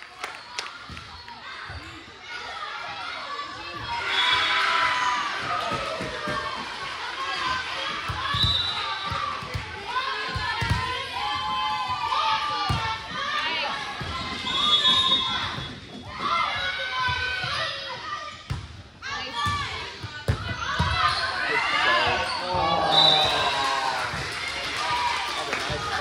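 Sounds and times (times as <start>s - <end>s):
spectators' voices echoing: 19.0s - 26.0s.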